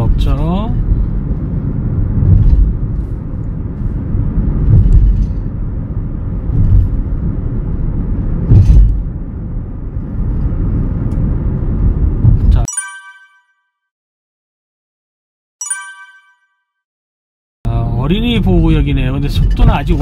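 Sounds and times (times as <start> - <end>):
car road and engine rumble: 0.0 - 12.7, 17.7 - 20.0.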